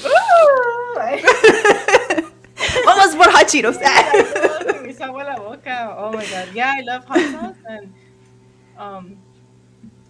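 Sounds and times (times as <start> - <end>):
women laughing: 0.0 - 5.1, 6.1 - 7.8.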